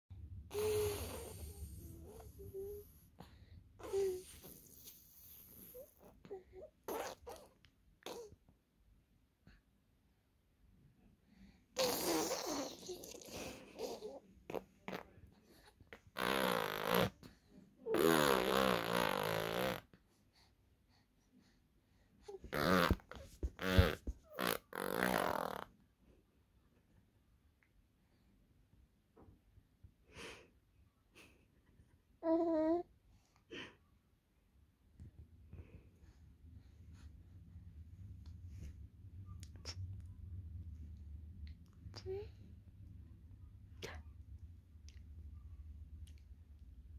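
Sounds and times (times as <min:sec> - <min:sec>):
baby cooing: 0:03.8 - 0:04.8, 0:05.8 - 0:08.4, 0:11.8 - 0:15.0, 0:32.2 - 0:32.9.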